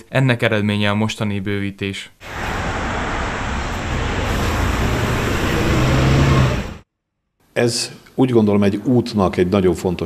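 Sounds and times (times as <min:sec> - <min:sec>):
bus engine passing: 0:02.2 - 0:06.8
car driving past: 0:02.2 - 0:06.8.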